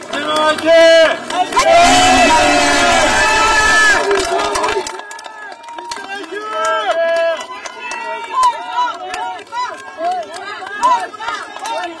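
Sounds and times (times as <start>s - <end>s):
crowd calling out and talking: 0.0s - 12.0s.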